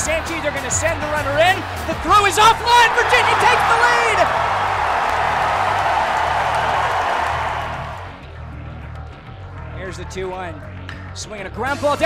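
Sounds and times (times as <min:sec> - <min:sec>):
crowd cheering: 0:00.0 - 0:08.2
background music with bass line: 0:00.0 - 0:12.0.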